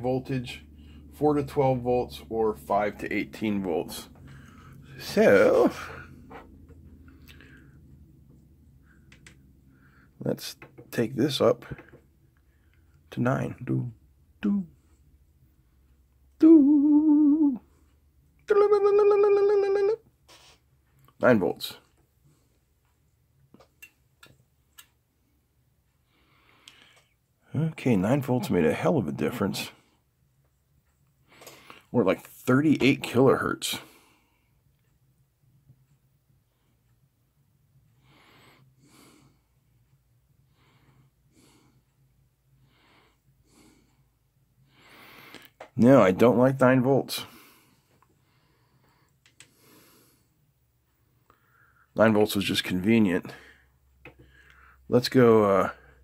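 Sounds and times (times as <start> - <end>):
faint breaths close to microphone: 0.0 - 13.2, 37.9 - 45.8, 47.1 - 52.0
faint low steady hum: 0.0 - 56.0
man humming a held note: 16.4 - 17.7, 18.5 - 20.0.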